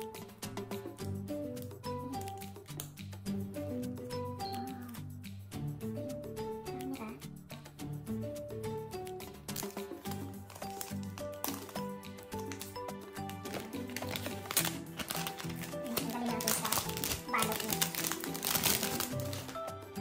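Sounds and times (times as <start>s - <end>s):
background music: 0.0s - 20.0s
plastic film crinkling: 9.5s - 20.0s.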